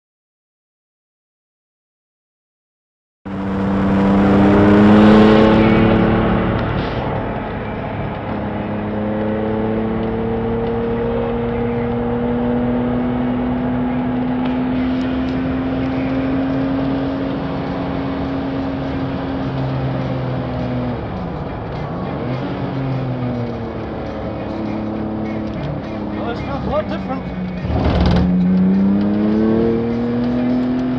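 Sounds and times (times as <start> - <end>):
car engine high-revving: 3.3 - 30.9.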